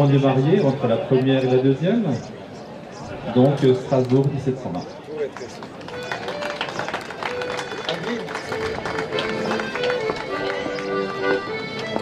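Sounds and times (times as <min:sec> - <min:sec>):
outdoor crowd chatter: 0:00.0 - 0:12.0
live folk dance music: 0:05.5 - 0:12.0.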